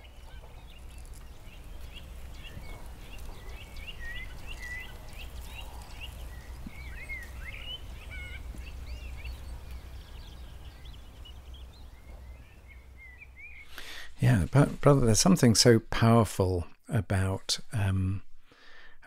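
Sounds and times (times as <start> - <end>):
small birds chirping and whistling: 0.0 - 14.6.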